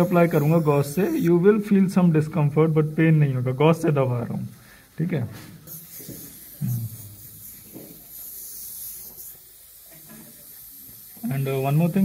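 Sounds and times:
steady airy hiss: 0:00.0 - 0:12.0.

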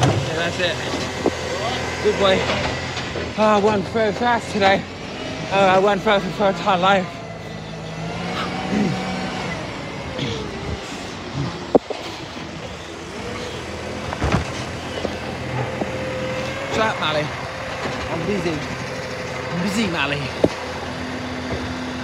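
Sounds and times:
garbage truck engine whining: 0:00.0 - 0:22.0.

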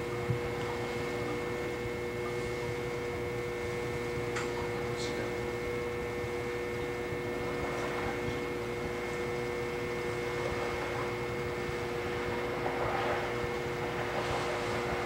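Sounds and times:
potter's wheel humming: 0:00.0 - 0:15.0.

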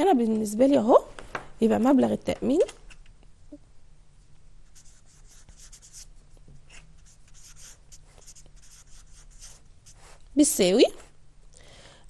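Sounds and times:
marker scratching on whiteboard: 0:04.6 - 0:10.2.

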